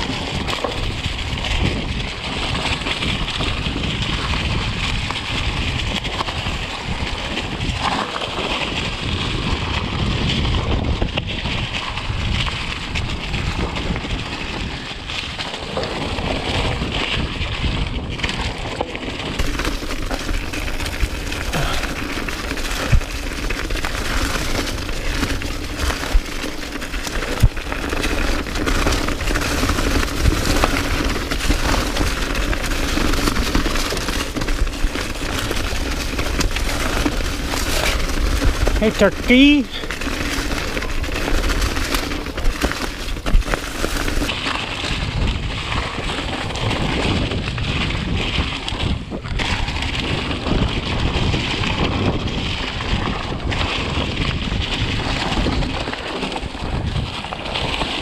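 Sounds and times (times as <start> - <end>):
bike knocking on roots: 0.0 - 58.0
bike tyres crackling through leaves: 0.0 - 58.0
wind on microphone: 0.0 - 58.0.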